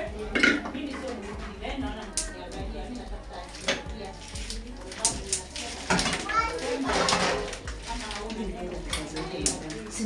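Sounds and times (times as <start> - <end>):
children chattering: 5.4 - 10.0.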